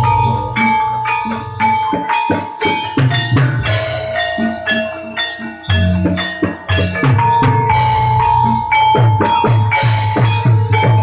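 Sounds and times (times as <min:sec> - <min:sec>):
held high tone: 0:00.0 - 0:11.0
jingling bells: 0:00.0 - 0:11.0
struck metal percussion: 0:00.0 - 0:11.0.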